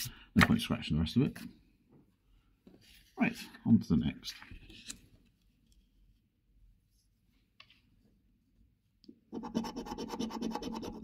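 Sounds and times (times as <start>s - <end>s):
coin scratching a scratch card: 9.3s - 11.0s.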